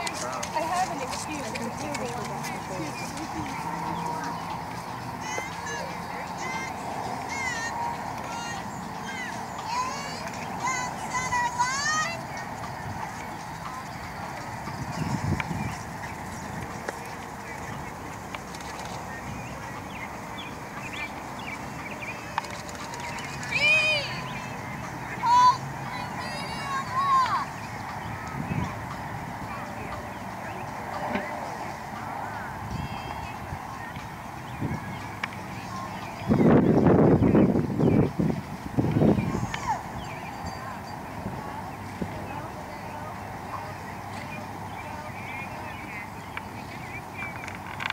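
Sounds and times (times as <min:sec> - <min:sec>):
horse hooves trotting on sand: 0:00.0 - 0:25.2
bird calls: 0:00.0 - 0:47.9
outdoor background noise: 0:00.0 - 0:47.9
wind rumble on microphone: 0:14.2 - 0:18.3, 0:28.0 - 0:30.2, 0:32.1 - 0:35.2, 0:35.8 - 0:43.5.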